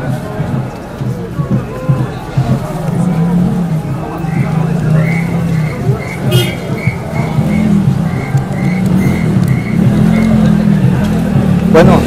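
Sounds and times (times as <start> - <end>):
motor vehicle running: 0.0 - 12.0.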